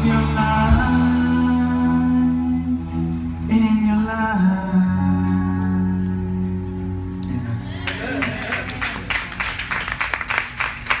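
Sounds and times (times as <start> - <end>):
faint music: 0.0 - 11.0
audience applauding: 7.8 - 11.0.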